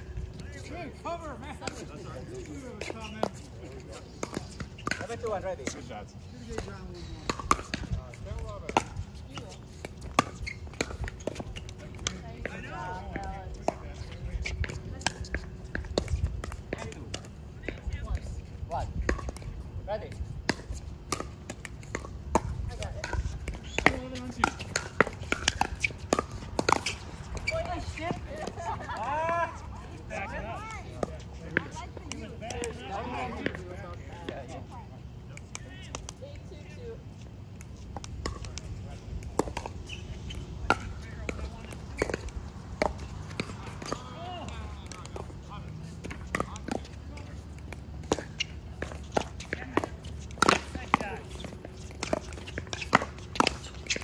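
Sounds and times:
people talking: 0.3 - 9.7, 11.4 - 15.5, 22.7 - 24.8, 27.4 - 37.0, 40.6 - 42.0, 43.0 - 52.6
ball bouncing on hard court: 20.2 - 28.6, 37.6 - 54.0.

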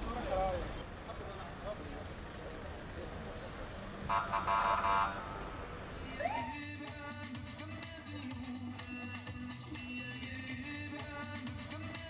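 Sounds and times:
street background noise: 0.0 - 12.0
car horn toots: 4.1 - 5.4.

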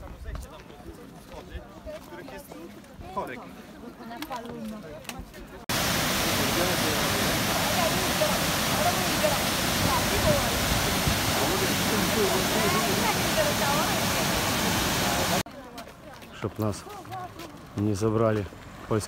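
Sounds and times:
waterfall rushing: 5.7 - 15.5.

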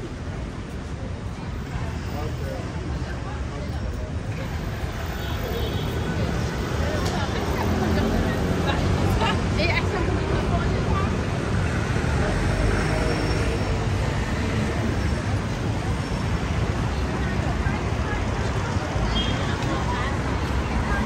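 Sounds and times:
indistinct voices of passers-by: 0.0 - 21.0
road traffic rumble: 0.0 - 21.0.

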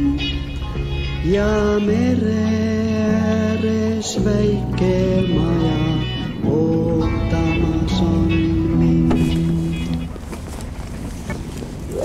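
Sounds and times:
music holding a chord: 0.0 - 10.3
low steady rumble: 0.0 - 12.0.

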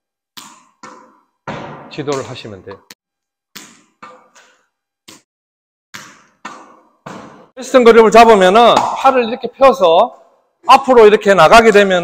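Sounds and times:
tennis ball bouncing on floor: 0.4 - 2.8, 3.5 - 4.5, 6.0 - 7.6
man speaking: 1.9 - 2.9, 7.6 - 12.0.

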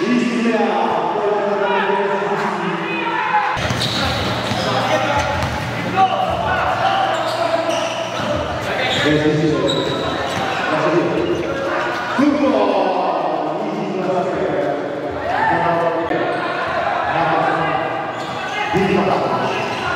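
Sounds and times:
basketball bouncing on court: 3.6 - 6.5.

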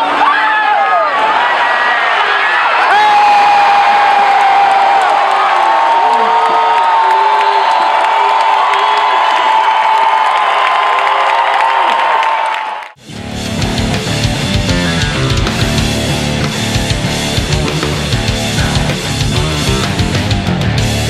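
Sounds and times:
stadium crowd cheering: 0.0 - 21.0
loud rock music with guitar: 13.0 - 21.0.

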